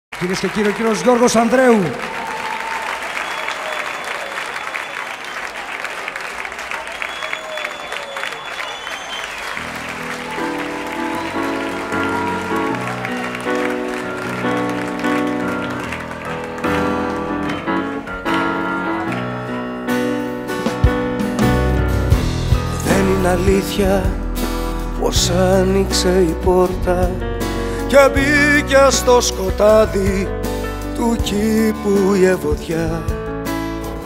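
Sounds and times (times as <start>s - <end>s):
audience applauding: 0.1s - 20.8s
piano-led instrumental music: 9.4s - 34.0s.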